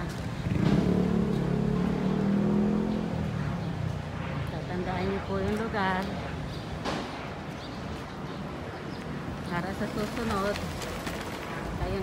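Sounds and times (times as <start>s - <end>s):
vehicle engine passing: 0.0s - 5.3s
street traffic noise: 0.0s - 12.0s.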